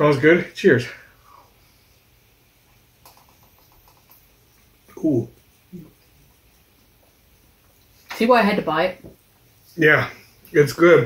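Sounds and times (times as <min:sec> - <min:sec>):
lip-smacking clicks: 0:03.0 - 0:04.3.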